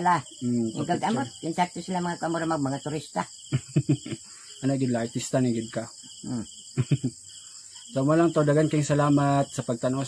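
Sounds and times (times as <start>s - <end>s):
crickets chirping: 0.0s - 10.0s
man talking: 3.6s - 7.1s, 7.9s - 10.0s.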